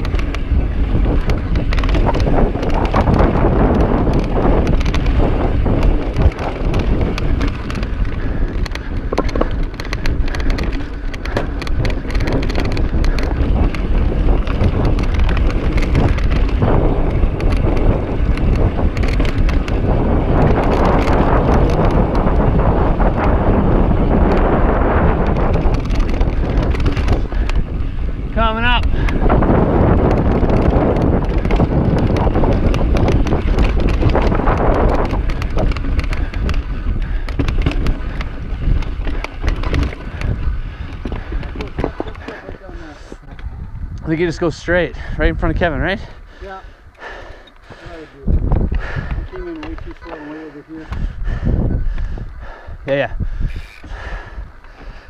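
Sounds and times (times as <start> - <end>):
bike rattling over rock: 0.0 - 43.6, 47.1 - 55.0
wind rumbling on microphone: 0.0 - 55.0.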